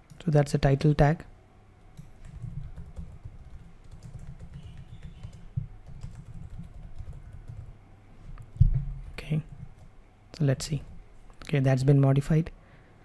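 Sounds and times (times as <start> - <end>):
typing on computer keyboard: 2.0 - 7.7.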